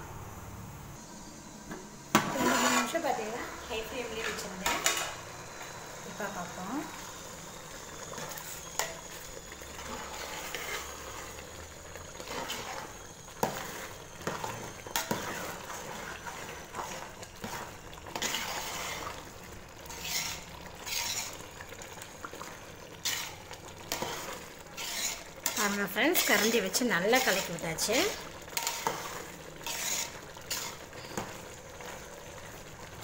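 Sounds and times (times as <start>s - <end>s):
boiling water bubbling: 1.3s - 33.0s
metal ladle scraping pot: 2.2s - 3.4s, 4.0s - 5.2s, 8.0s - 21.9s, 22.9s - 32.0s.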